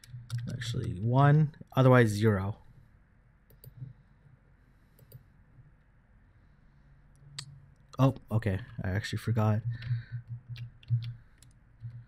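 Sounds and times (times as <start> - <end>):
computer mouse clicks: 0.0 - 1.0, 3.5 - 3.9, 5.0 - 5.2, 9.7 - 12.0.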